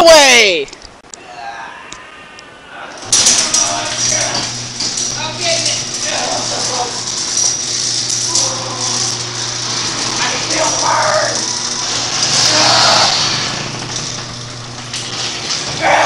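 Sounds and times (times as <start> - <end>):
garage door rattling: 3.0 - 16.0.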